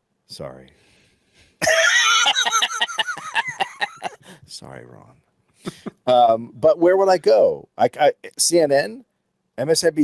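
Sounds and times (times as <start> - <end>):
man laughing: 1.6 - 4.4, 5.6 - 6.3.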